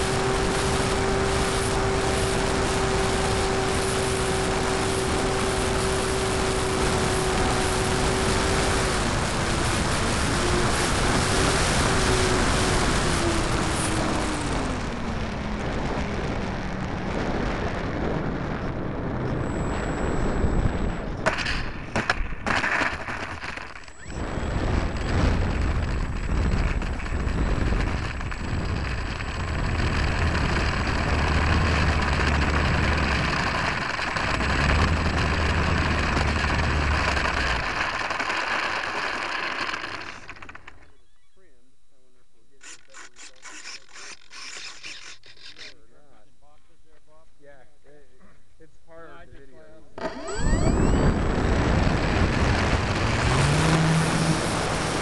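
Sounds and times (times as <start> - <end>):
rushing wind: 0.0 - 40.8, 50.0 - 55.0
sharp crackles: 0.0 - 41.4, 42.5 - 45.8, 50.0 - 55.0
model plane propeller noise: 0.0 - 46.2, 49.1 - 55.0.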